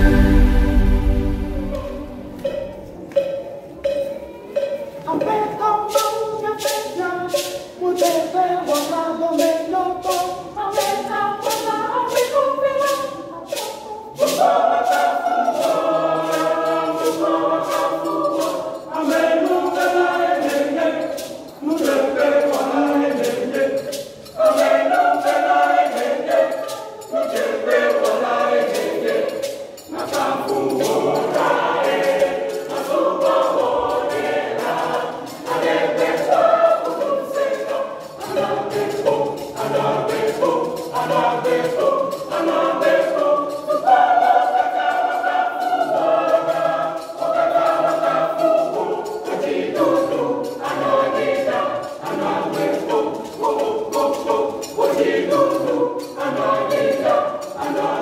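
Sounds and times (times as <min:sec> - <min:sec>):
children's choir singing: 0:00.0 - 0:58.0.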